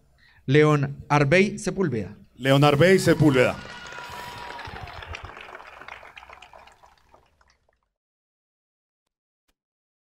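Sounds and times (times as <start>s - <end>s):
audience applause: 2.7s - 7.8s.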